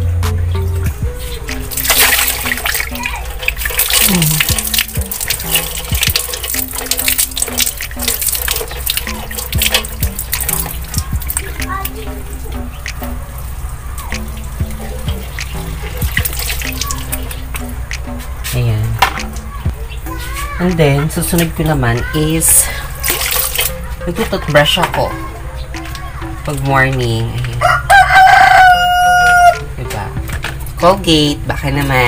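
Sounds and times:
background music: 0.0s - 32.0s
water splashing: 1.0s - 29.0s.

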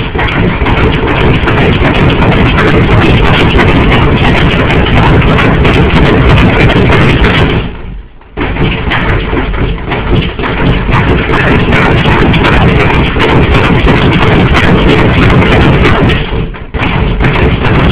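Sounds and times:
harsh amplified feedback noise: 0.0s - 17.9s.

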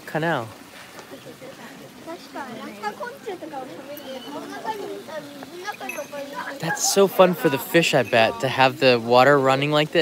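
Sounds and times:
people talking at once: 1.0s - 10.0s.

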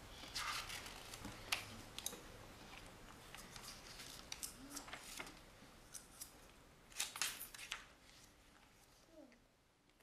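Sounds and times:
book pages turning: 0.2s - 8.9s.

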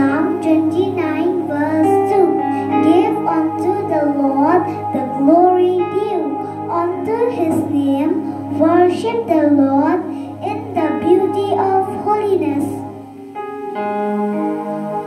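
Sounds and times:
girl singing into microphone: 0.0s - 12.8s
electronic keyboard chords: 0.0s - 15.0s.

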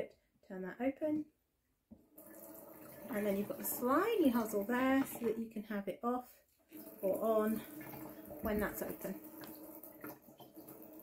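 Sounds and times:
water running from shower head: 2.2s - 5.6s, 6.6s - 11.0s.

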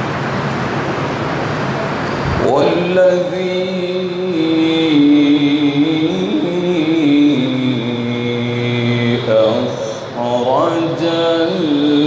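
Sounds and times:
man reciting melodically into microphone: 2.4s - 12.0s.

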